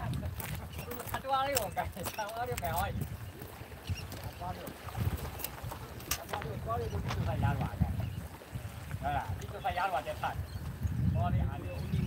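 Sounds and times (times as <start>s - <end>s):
small waves washing against rocks: 0.0s - 10.4s
wind rumbling on microphone: 0.0s - 12.0s.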